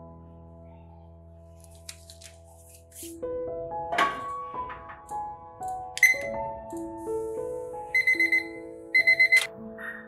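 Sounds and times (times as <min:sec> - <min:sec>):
kitchen timer beeping: 0:06.0 - 0:06.3, 0:08.0 - 0:09.5.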